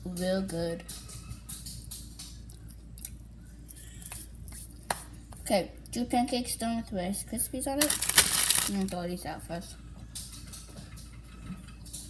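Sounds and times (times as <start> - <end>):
cereal clicking and rustling: 7.8 - 9.0.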